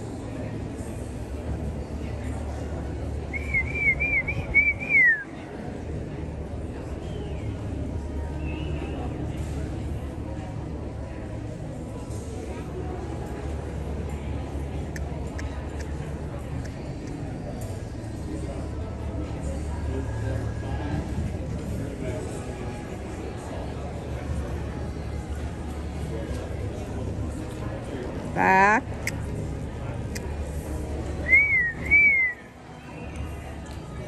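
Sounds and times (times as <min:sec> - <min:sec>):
faint indistinct voices: 0:00.0 - 0:34.0
person whistling short notes: 0:03.3 - 0:05.2, 0:31.2 - 0:32.4.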